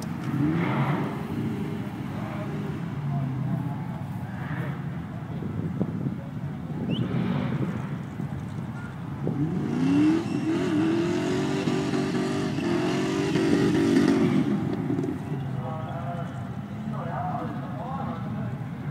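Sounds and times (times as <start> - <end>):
car engine revving hard: 0.2 - 1.9, 9.2 - 15.0.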